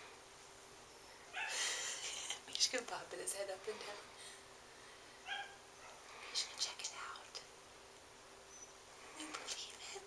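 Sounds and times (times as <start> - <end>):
faint whispered voices: 9.1 - 10.0.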